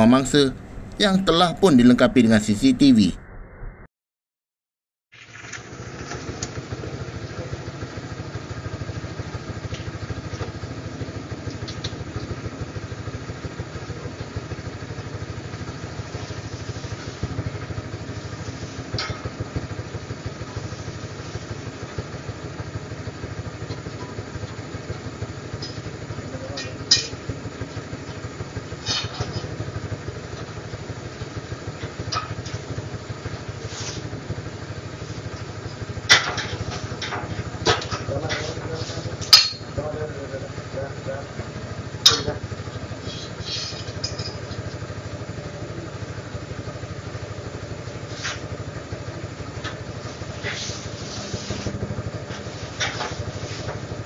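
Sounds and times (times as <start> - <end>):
motorcycle engine idling: 5.2 - 54.0.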